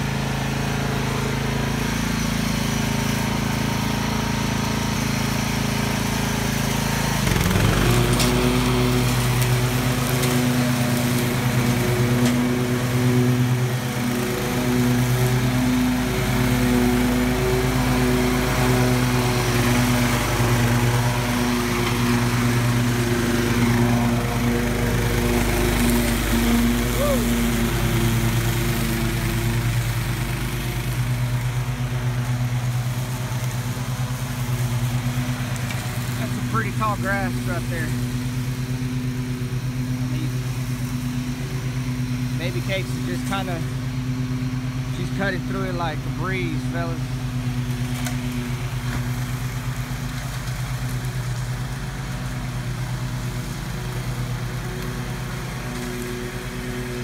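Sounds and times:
riding mower engine running: 0.0 - 57.0.

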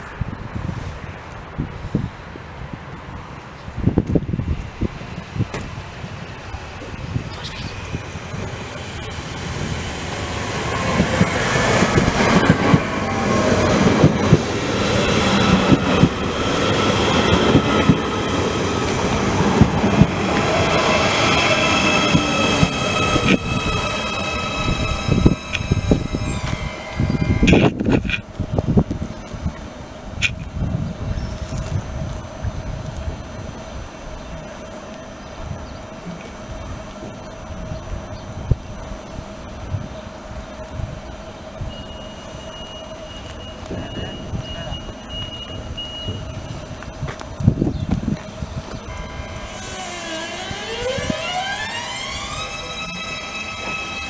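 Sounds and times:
train arriving and braking: 0.0 - 54.0
stopped train humming: 4.4 - 54.0
high whines falling in pitch: 6.4 - 28.0, 34.2 - 54.0
brake squeal: 20.8 - 28.2, 41.6 - 46.9, 48.5 - 54.0.

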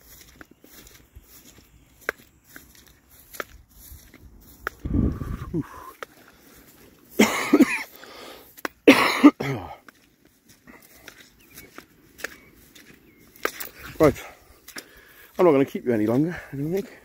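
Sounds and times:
man coughing: 7.1 - 7.9, 8.8 - 9.8.

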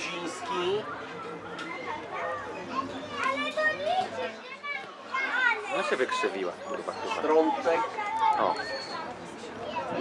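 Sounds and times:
voices shouting and chattering: 0.0 - 10.0.

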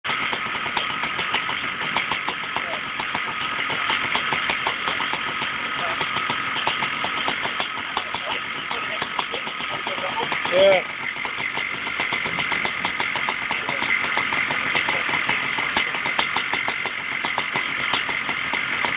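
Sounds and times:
quad bike engine running: 0.0 - 18.9.

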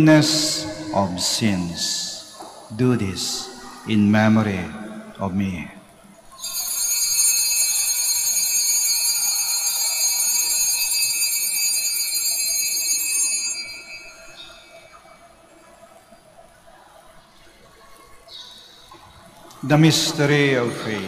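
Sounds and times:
altar bells ringing: 6.4 - 15.8.

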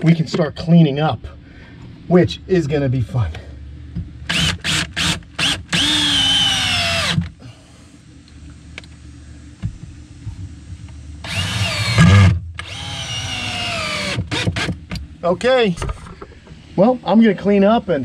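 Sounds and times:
cordless drill driving screws into wood: 4.3 - 7.3, 11.2 - 14.8.

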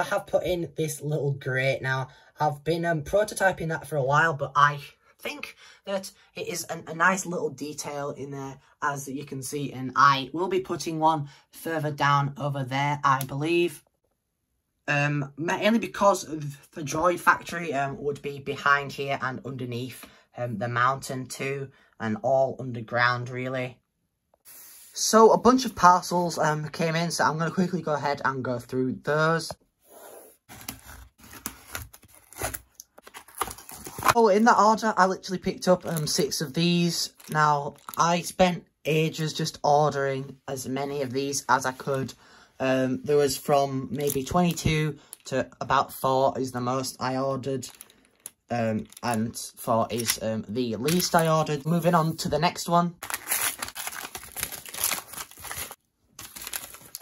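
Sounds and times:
bubble wrap crinkling: 30.4 - 34.2, 37.1 - 38.0, 47.6 - 49.2, 50.8 - 52.0, 53.0 - 57.0
cardboard box tearing and scraping: 30.5 - 34.2
paper envelope tearing and crumpling: 30.5 - 34.2, 50.8 - 51.5, 53.0 - 57.0.

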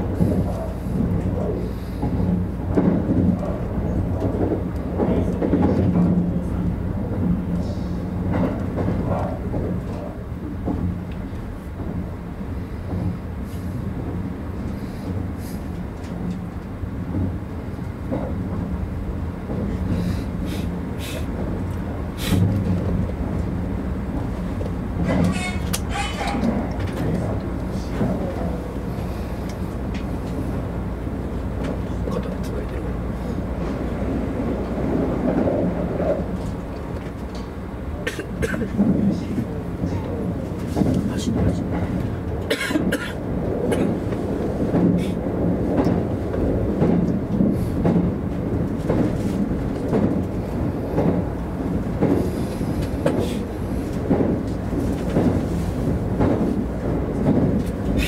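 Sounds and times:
train running rumble: 0.0 - 58.0
sharp clicks from track: 25.2 - 27.1.

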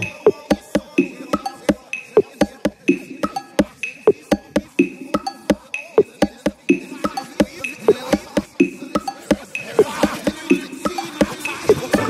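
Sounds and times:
clicky electronic percussion groove: 0.0 - 12.0.

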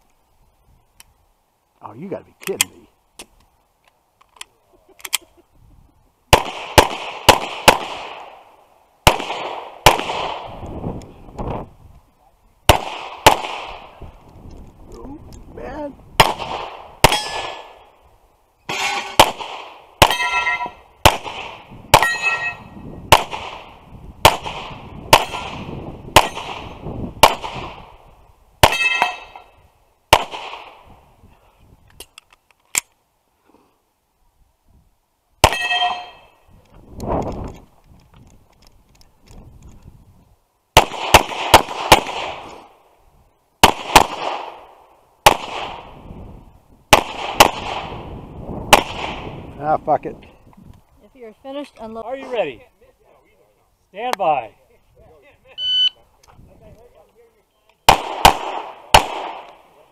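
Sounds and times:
steel plates ringing: 20.1 - 20.8, 22.0 - 22.8, 28.7 - 29.6, 35.5 - 36.4
handgun shots: 57.9 - 59.6.

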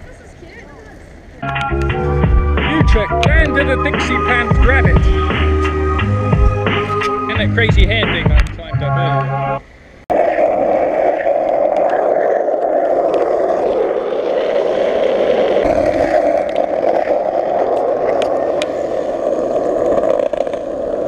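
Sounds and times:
skateboard wheels rolling on asphalt: 10.1 - 21.0.

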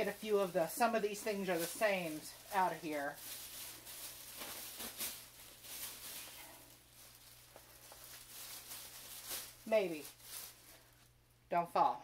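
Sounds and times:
bag rustling and crinkling: 0.0 - 11.2.

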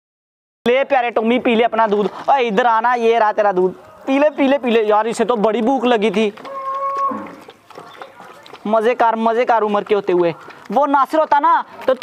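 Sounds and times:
animal call: 6.4 - 8.6.

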